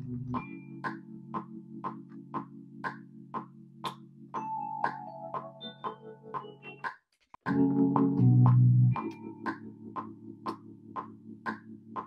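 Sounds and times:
electric piano chord: 7.5s - 11.4s.

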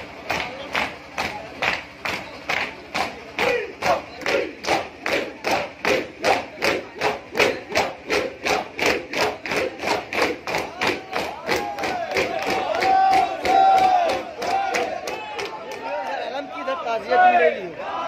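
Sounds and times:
mourners beating chests in unison: 0.0s - 15.8s
men shouting: 3.0s - 18.0s
long shouted cries: 11.1s - 18.0s.

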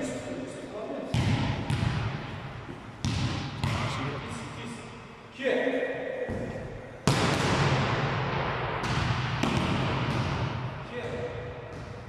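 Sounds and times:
ball bouncing in gym: 1.1s - 4.0s, 6.3s - 12.0s
volleyball spike smack: 8.8s - 10.5s.

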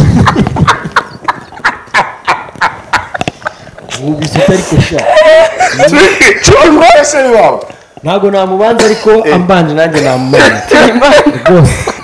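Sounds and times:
hearty laughter: 0.0s - 6.4s, 10.4s - 12.0s.

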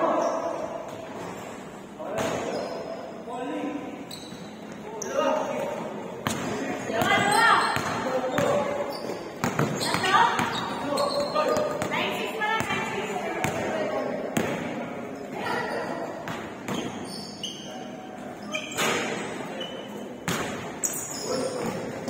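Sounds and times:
basketball bouncing on gym floor: 6.2s - 13.8s, 14.4s - 14.8s.

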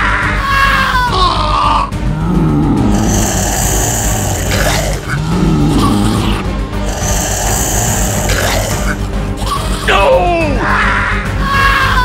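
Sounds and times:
background music: 0.0s - 12.0s
man groaning and growling: 1.9s - 10.8s.

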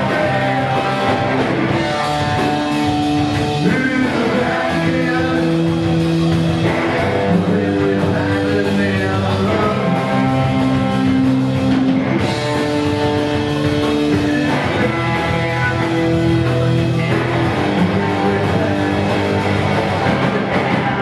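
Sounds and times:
drum kit: 0.0s - 21.0s
electric guitar chords: 0.0s - 21.0s.

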